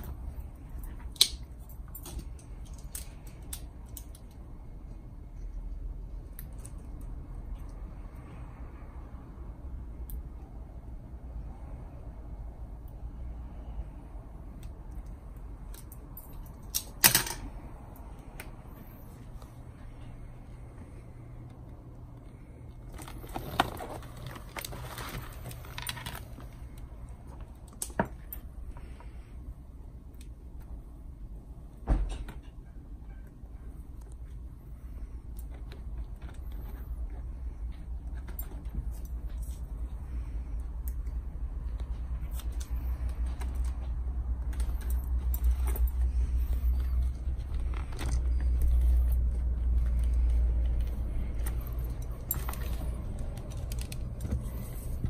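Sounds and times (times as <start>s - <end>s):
rustling of helmet padding: 22.8s - 28.2s, 41.8s - 55.0s
steady low rumble: 32.5s - 55.0s.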